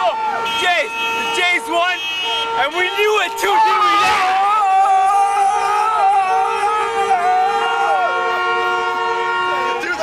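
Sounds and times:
two-tone car horn blast: 0.4s - 4.3s, 5.4s - 10.0s.

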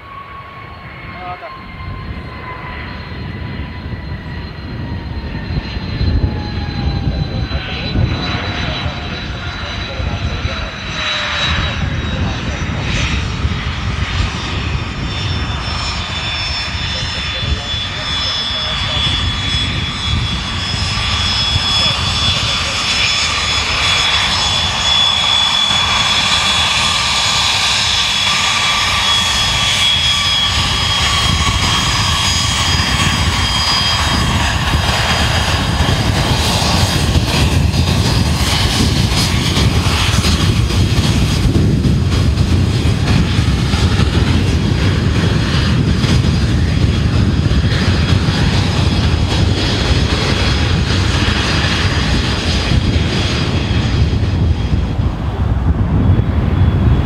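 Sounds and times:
jet engine whine: 0.0s - 57.0s
wind rumble on microphone: 0.1s - 57.0s.

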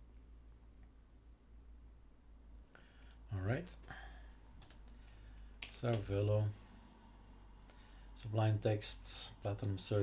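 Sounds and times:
low steady hum: 0.0s - 10.0s
computer keyboard keystrokes: 4.6s - 6.1s.

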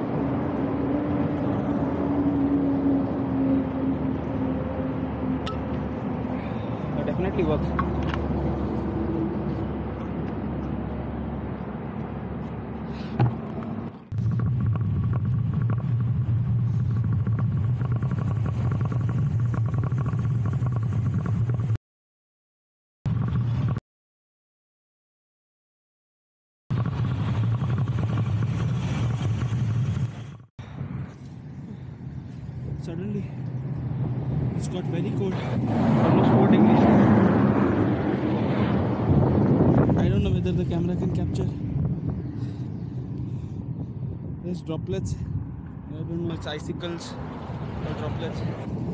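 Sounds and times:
wind rumbling on microphone: 0.0s - 21.8s, 26.7s - 48.9s.

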